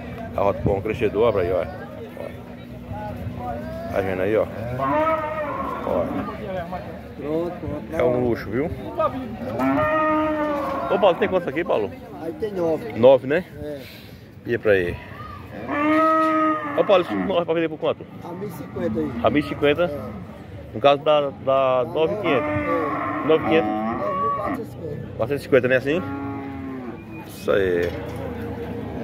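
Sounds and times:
cow mooing: 4.6 - 6.4, 9.5 - 11.5, 15.6 - 17.4, 22.1 - 24.7, 25.8 - 27.1.

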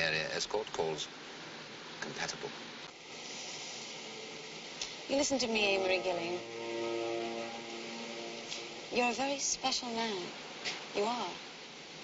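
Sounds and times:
steady hiss: 0.0 - 12.0
faint held tone: 5.2 - 9.7.

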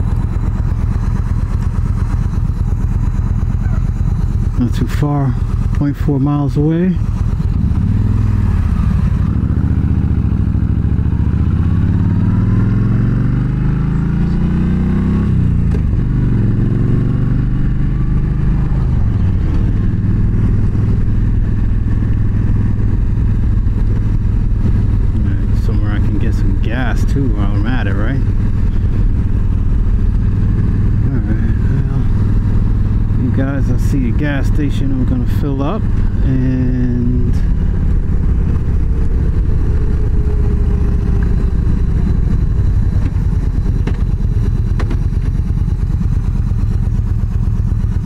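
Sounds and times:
motorcycle accelerating: 0.0 - 48.0.

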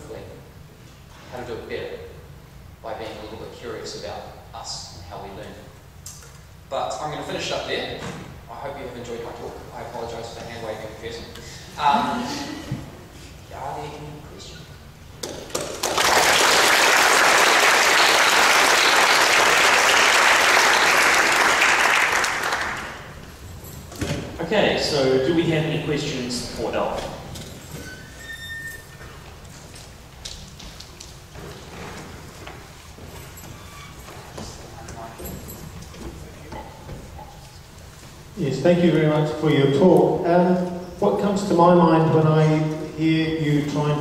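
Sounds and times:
audience applauding: 15.5 - 23.2.

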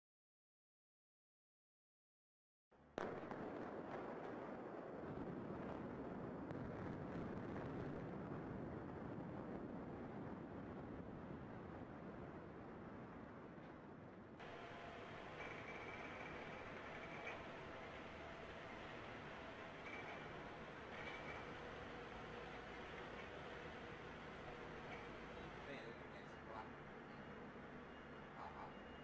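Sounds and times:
demolition charges firing: 3.0 - 10.4, 14.4 - 25.7
building collapse rumble: 3.0 - 29.0
faint steady tones: 3.0 - 29.0.

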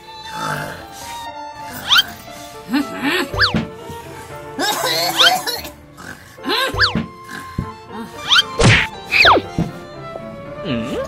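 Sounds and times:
background music: 0.0 - 11.0
cartoon snoring with whistle: 1.8 - 2.2, 3.3 - 3.6, 6.0 - 9.4.

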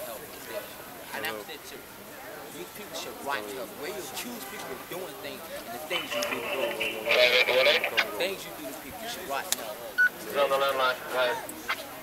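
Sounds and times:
men arguing: 2.5 - 11.6.

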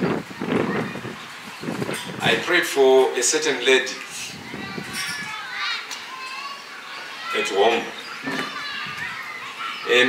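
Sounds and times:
children's voices: 0.0 - 10.0.

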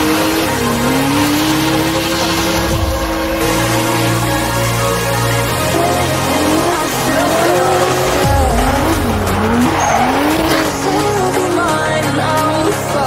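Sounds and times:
tyres squealing: 0.0 - 11.9
car engine revving: 0.0 - 13.0
electronic music with bass line: 0.0 - 13.0.

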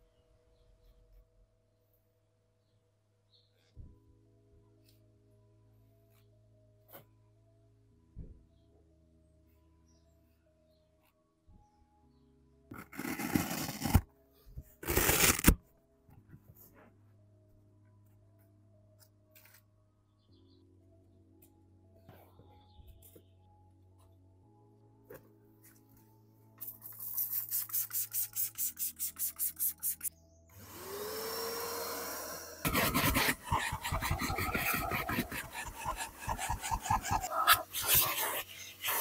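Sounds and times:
floor mat rustling scrape: 12.7 - 14.1
spray bottle squirting: 26.8 - 30.1, 32.7 - 39.0
vacuum motor whining: 30.6 - 33.4
vacuum nozzle scrubbing carpet: 30.6 - 39.0.

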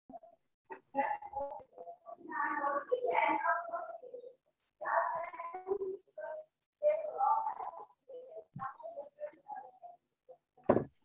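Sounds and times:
voices over video call: 0.1 - 11.0.

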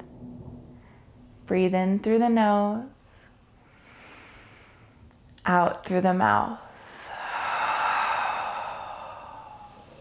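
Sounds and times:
woman exhaling with a sigh: 6.8 - 10.0.

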